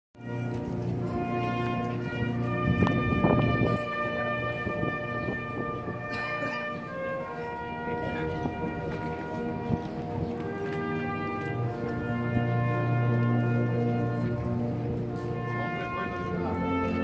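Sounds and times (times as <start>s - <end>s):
brass and drum band playing march: 0.2s - 17.0s.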